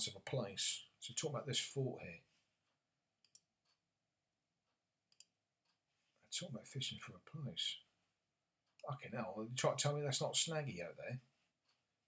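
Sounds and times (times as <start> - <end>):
computer mouse clicks: 3.2 - 3.5, 5.1 - 5.4.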